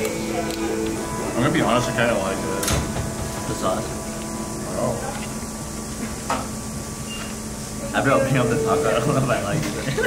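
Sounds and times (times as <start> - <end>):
faint voices: 0.0 - 5.4
steady low hum: 0.0 - 10.0.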